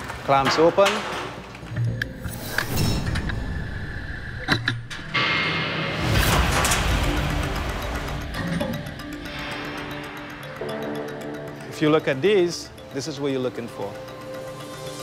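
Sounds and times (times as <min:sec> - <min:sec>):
background music: 0:00.0 - 0:15.0
sharp machine knocks: 0:05.2 - 0:08.3.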